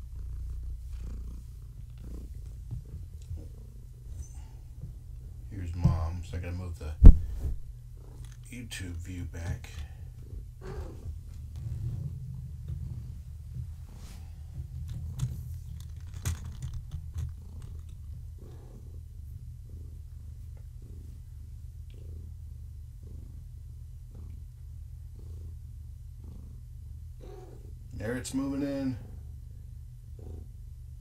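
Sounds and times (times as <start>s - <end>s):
cat purring: 0.0s - 31.0s
small clicks and knocks: 14.6s - 18.3s.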